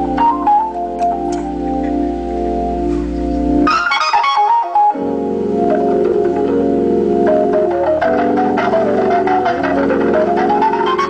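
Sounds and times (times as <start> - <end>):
organ playing gospel chords: 0.0 - 11.0.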